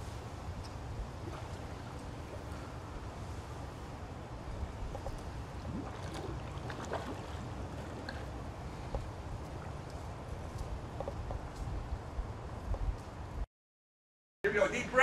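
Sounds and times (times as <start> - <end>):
pool water lapping and splashing: 0.0 - 11.7
steady low rumble: 0.0 - 13.5.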